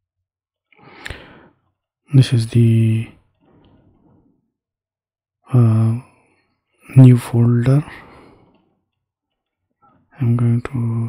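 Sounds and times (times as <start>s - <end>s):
person sighing: 0.8s - 1.5s.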